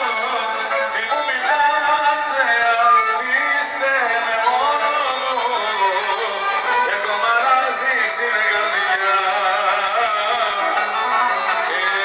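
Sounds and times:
bowed violin: 0:00.0 - 0:12.0
man singing into microphone: 0:00.0 - 0:12.0.

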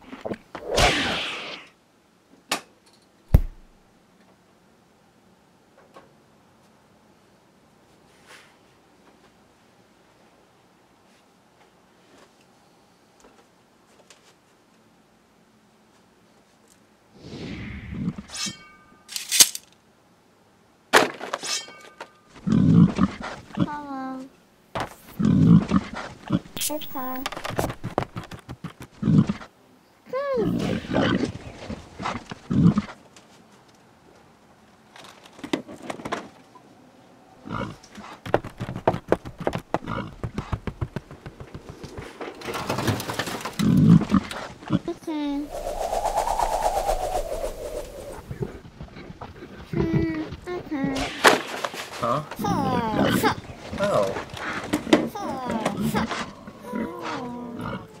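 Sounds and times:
animal-like vocal sound: 0:30.3 - 0:33.0, 0:55.3 - 0:58.0.

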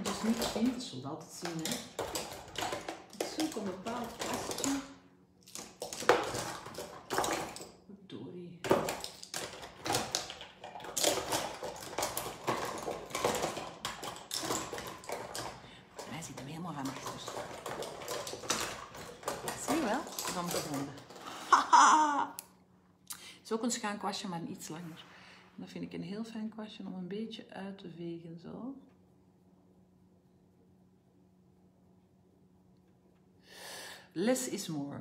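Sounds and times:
brush handles and lids clattering: 0:00.0 - 0:07.8, 0:08.6 - 0:21.9.

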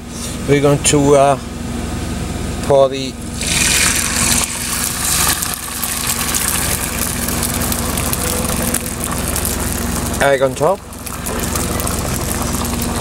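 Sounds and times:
steady low hum: 0:00.0 - 0:13.0
eggs sizzling in frying pan: 0:03.4 - 0:13.0.

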